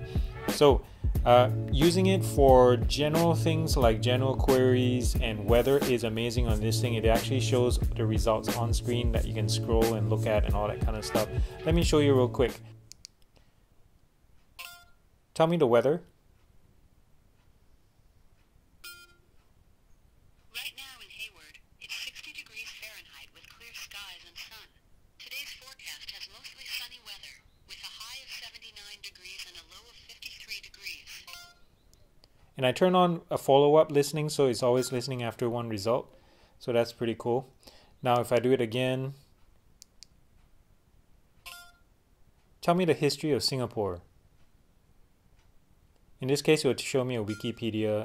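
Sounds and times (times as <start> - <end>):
smartwatch electronic chime: 14.6 - 15.0, 18.8 - 19.3, 31.2 - 31.7, 34.8 - 35.2, 41.4 - 41.9, 47.2 - 47.7
short electronic beep: 18.8 - 19.3.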